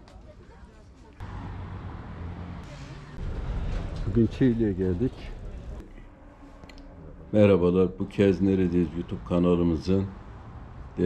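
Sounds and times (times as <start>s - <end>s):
traffic rumble: 0.1s - 11.0s.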